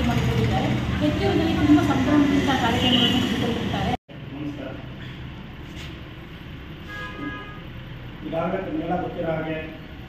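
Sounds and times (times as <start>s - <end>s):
vehicle horn toot: 6.8s - 7.8s.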